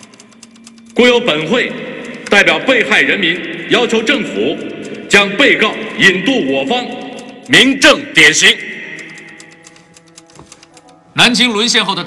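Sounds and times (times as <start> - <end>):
faint rapid clicking: 0.0 - 1.1, 6.7 - 11.0
echoing voice: 0.0 - 12.0
quiet background music: 0.0 - 12.0.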